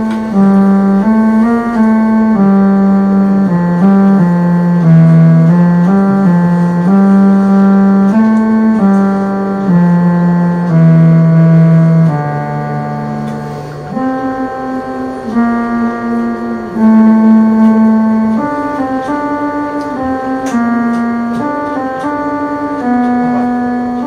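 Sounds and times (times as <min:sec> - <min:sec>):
electronic keyboard slow melody: 0:00.0 - 0:24.0.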